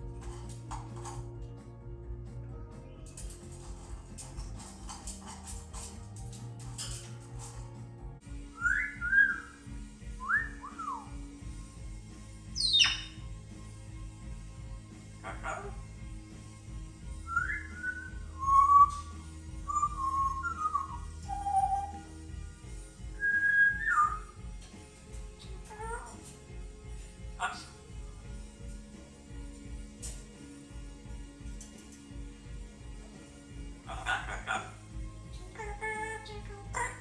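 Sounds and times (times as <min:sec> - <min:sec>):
parrot whistling: 0:08.5 - 0:09.6, 0:10.2 - 0:11.1, 0:12.6 - 0:13.2, 0:17.3 - 0:22.1, 0:23.2 - 0:24.4.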